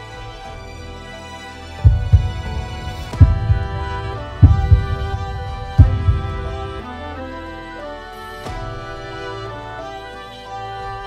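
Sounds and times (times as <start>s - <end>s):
dramatic background music: 0.0s - 11.0s
low heartbeat thumps: 1.8s - 6.8s.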